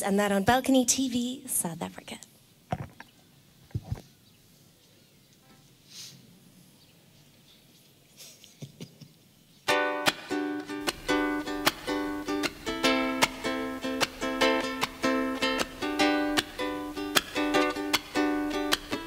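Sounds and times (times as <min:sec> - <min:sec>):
ukulele strumming chords: 0:09.7 - 0:19.0.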